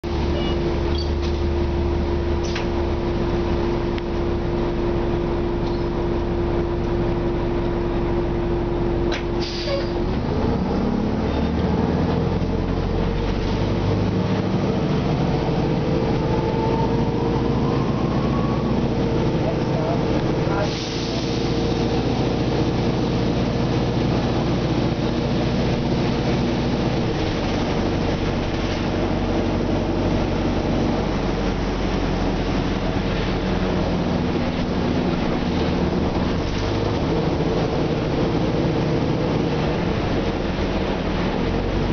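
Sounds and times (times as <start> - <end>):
bus engine whining from inside: 0.0 - 41.9.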